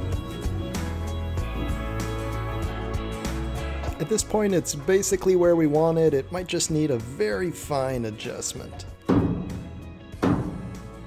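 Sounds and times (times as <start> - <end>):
background music: 0.0 - 11.0
hammer striking wooden frame: 9.0 - 11.0.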